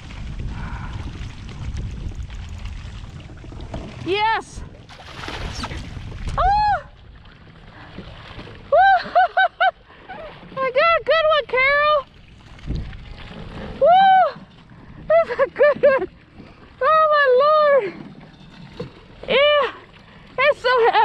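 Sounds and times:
fish splashing in a net: 4.9 - 6.4
woman squealing: 6.4 - 7.0, 13.8 - 14.5.

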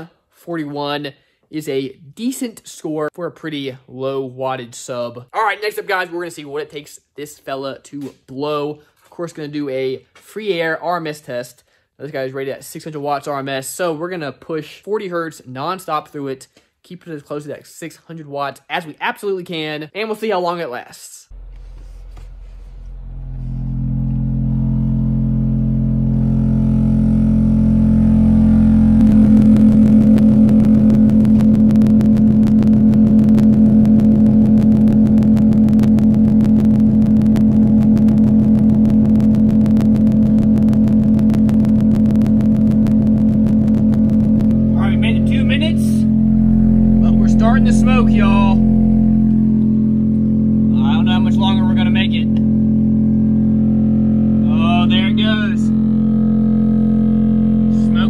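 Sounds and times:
subwoofer low test tone drone: 21.3 - 58.0.

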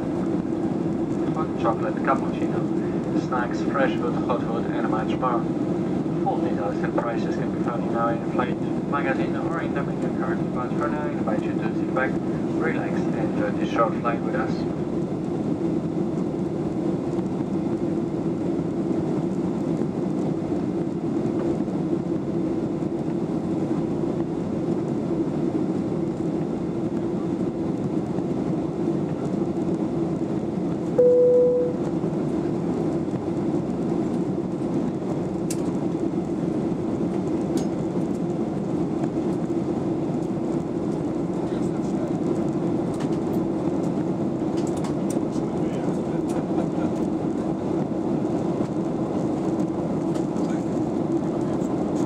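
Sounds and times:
airplane cabin noise: 0.0 - 52.0
short single tone: 31.0 - 31.9.

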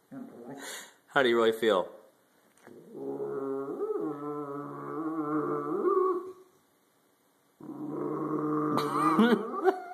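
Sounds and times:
dog growling: 2.7 - 6.3, 7.6 - 9.8.

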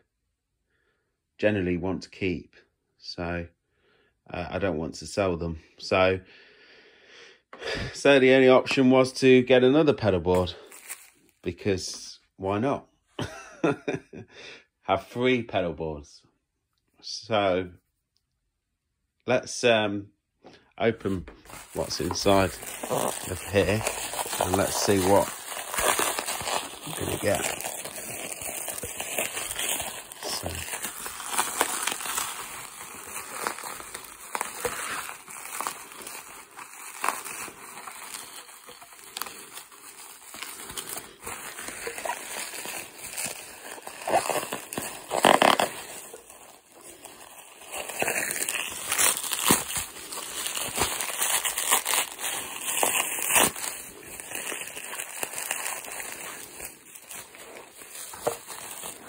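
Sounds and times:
bubble wrap crinkling: 10.3 - 11.4, 21.1 - 59.0.

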